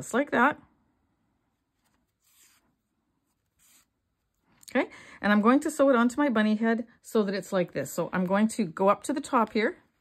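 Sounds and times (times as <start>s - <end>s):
faint yarn rustles: 1.4s - 4.6s.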